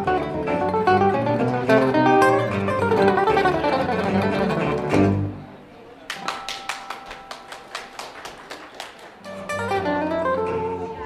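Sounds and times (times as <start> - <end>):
sharp claps counting tempo: 1.4 - 5.4, 6.0 - 10.2.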